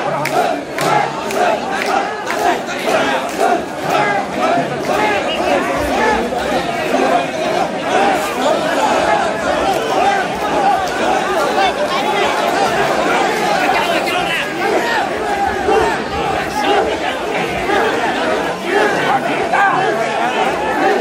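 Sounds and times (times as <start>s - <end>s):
crowd of men shouting: 0.0s - 21.0s.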